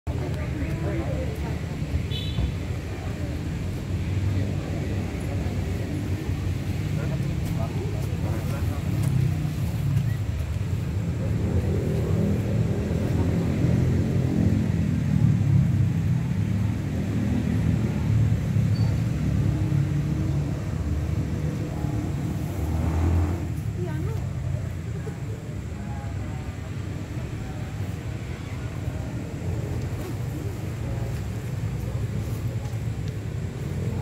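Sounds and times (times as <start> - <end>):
indistinct voices outdoors: 0.0 - 34.0.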